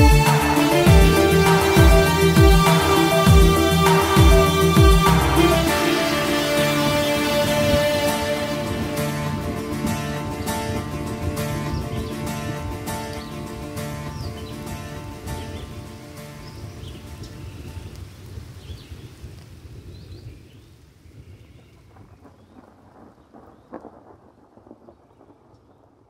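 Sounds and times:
high chirps: 0:00.0 - 0:13.7
ambient synth notes: 0:00.0 - 0:15.3
rain: 0:00.0 - 0:26.0
rolling thunder: 0:21.7 - 0:26.0.

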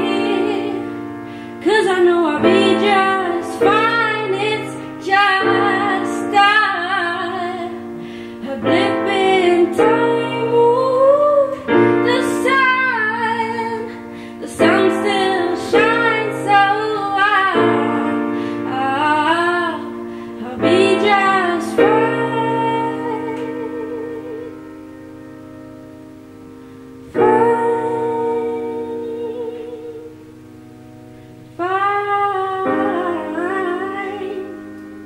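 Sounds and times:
woman singing: 0:00.0 - 0:24.8, 0:27.1 - 0:30.4, 0:31.6 - 0:35.0
grand piano chords: 0:00.0 - 0:35.0.

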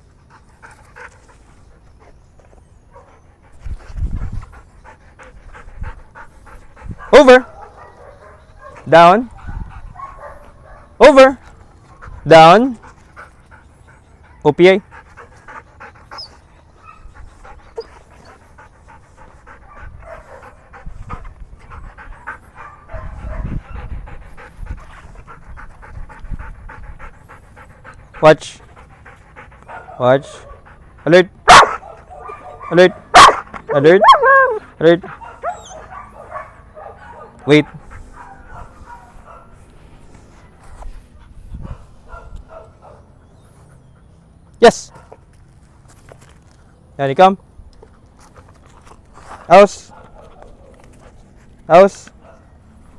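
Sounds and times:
dog panting rapidly: 0:00.0 - 0:02.2, 0:03.0 - 0:10.8, 0:11.8 - 0:32.6, 0:34.5 - 0:45.0.

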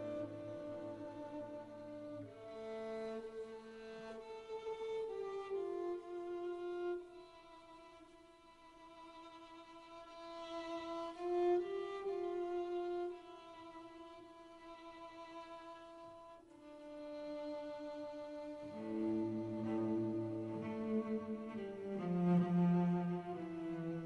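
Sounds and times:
string ensemble playing: 0:00.0 - 0:24.0.

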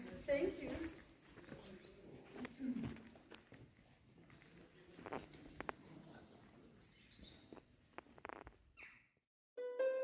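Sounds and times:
faint outdoor ambience: 0:00.0 - 0:09.2
background music: 0:09.6 - 0:10.0.

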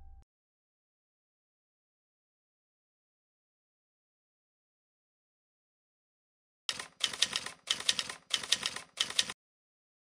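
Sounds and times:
typewriter key clacks: 0:06.7 - 0:09.4.

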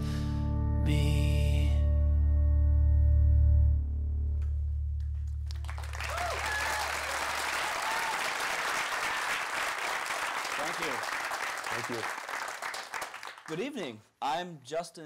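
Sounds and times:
audience applauding: 0:05.4 - 0:13.9.

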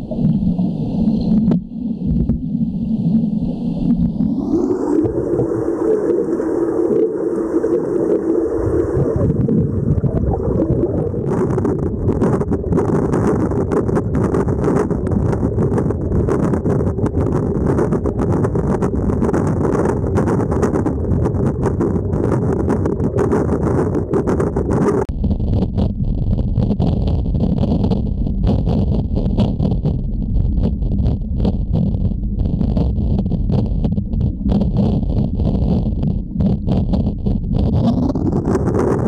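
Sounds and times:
crackling bubbles: 0:00.0 - 0:39.0
muffled rush of churning water: 0:00.0 - 0:39.0.

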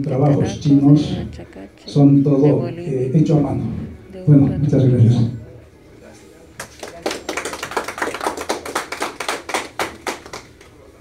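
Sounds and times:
small audience applauding: 0:06.6 - 0:10.9.

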